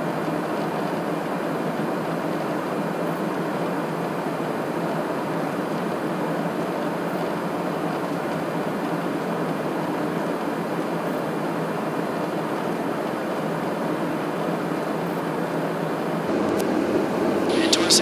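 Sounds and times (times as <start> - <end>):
aircraft cabin airflow and engine: 0.0 - 18.0.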